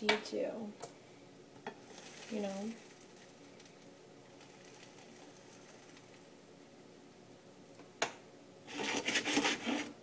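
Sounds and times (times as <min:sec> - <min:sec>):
sandwich sizzling in a pan: 0:01.8 - 0:06.2.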